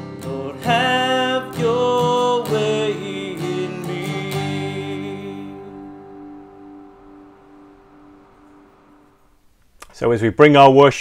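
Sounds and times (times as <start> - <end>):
acoustic guitar chord ringing: 0.0 - 9.3.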